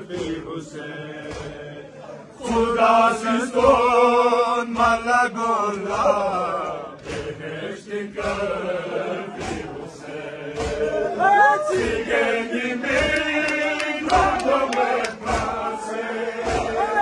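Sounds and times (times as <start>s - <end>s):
men chanting in unison: 0.0s - 17.0s
hand slaps on chest: 0.1s - 0.6s, 1.2s - 1.7s, 3.5s - 4.0s, 5.7s - 7.4s, 8.2s - 8.6s, 9.3s - 9.8s, 10.5s - 11.0s, 12.9s - 15.7s, 16.4s - 17.0s.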